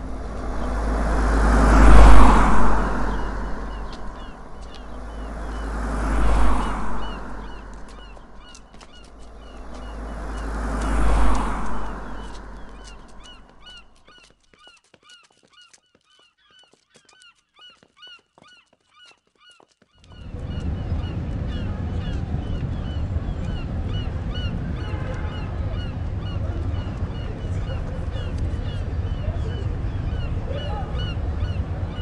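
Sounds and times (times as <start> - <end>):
steady rumble: 0.0 - 13.6, 20.1 - 32.0
vehicles passing close by: 0.0 - 14.2, 20.0 - 32.0
birds calling: 0.0 - 32.0.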